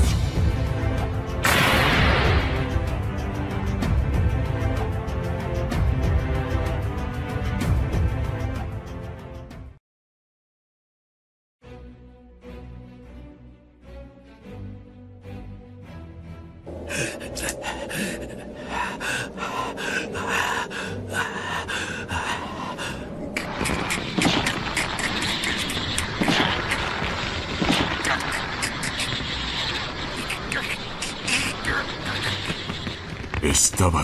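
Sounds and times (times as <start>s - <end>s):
battle music: 0.0s - 9.0s
crackling effects: 16.8s - 34.0s
rushing energy attack effects: 23.4s - 33.1s.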